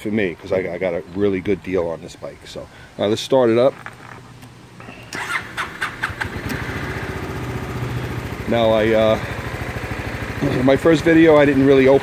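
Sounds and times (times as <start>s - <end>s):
scooter engine starting and idling: 4.9s - 12.0s.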